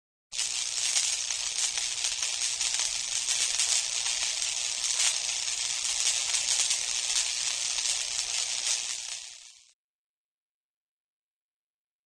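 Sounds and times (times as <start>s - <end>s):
steady high hiss: 0.4s - 9.8s.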